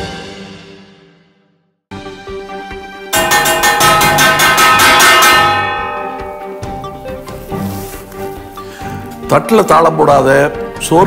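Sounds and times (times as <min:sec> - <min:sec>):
metal utensils clanging: 0:03.2 - 0:08.2.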